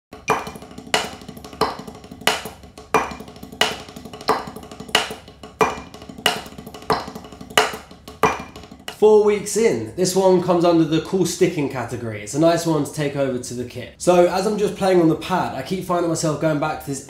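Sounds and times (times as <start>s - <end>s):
drumsticks on practice pad: 0.1s - 9.1s.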